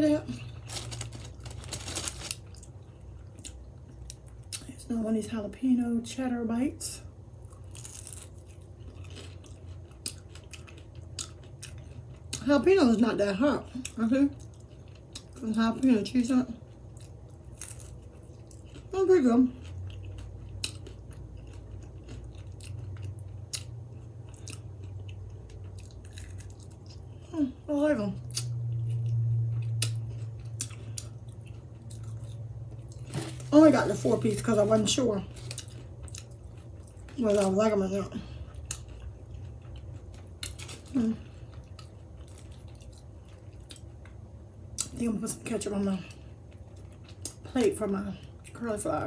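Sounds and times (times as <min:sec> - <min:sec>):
biting and chewing crunchy food: 0:00.0 - 0:04.7, 0:07.4 - 0:12.8, 0:13.5 - 0:27.3, 0:28.2 - 0:48.6
steady low hum: 0:00.0 - 0:49.0.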